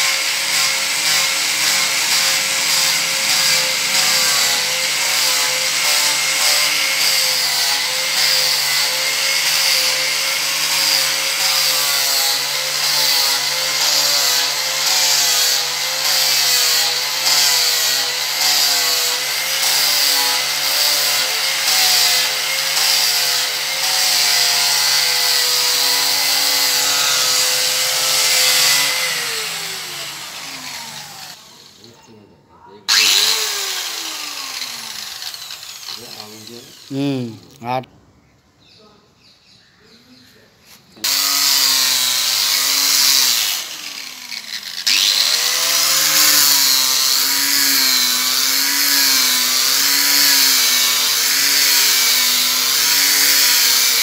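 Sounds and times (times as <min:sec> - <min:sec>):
angle grinder on wood: 0:00.0 - 0:32.2, 0:32.9 - 0:37.8, 0:41.0 - 0:54.0.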